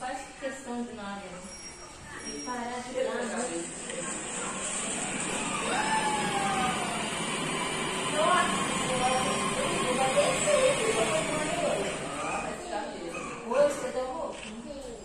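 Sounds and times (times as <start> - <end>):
distant people talking: 0.0 - 15.0.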